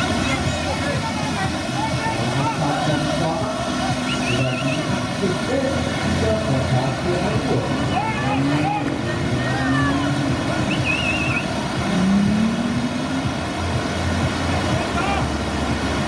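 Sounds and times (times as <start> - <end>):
distant voices: 0.0 - 16.0
whitewater rushing: 0.0 - 16.0.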